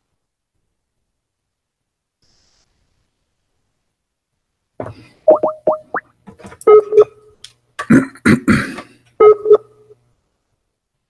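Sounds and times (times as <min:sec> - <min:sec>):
rising bubbly pops: 0:05.3 - 0:06.0.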